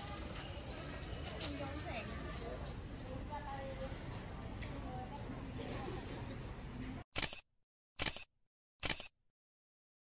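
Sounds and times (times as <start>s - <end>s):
camera shutter clicks: 7.2s - 7.4s, 8.0s - 9.2s.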